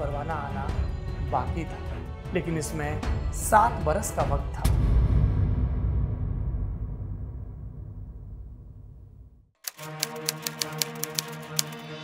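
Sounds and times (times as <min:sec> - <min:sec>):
soft background music: 0:00.0 - 0:04.8, 0:09.7 - 0:12.0
typewriter key strikes: 0:09.7 - 0:11.8.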